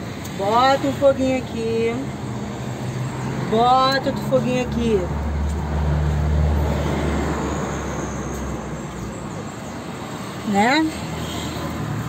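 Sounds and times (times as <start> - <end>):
passing motor vehicle rumble: 0.0 - 12.0.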